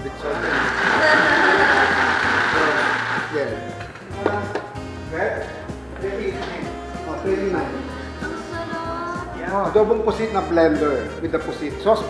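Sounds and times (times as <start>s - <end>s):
blender running: 0.3s - 3.6s.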